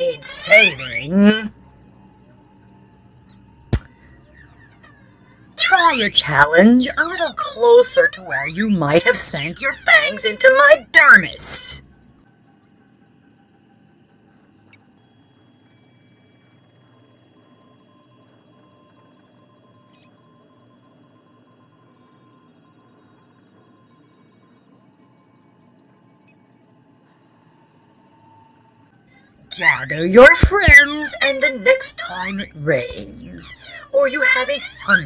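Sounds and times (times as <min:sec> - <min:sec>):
faint high electronic tones: 0:00.0 - 0:12.2, 0:12.8 - 0:35.0.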